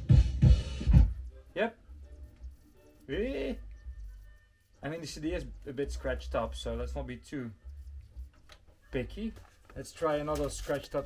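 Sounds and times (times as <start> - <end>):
music with heavy drum beat: 0.0 - 1.3.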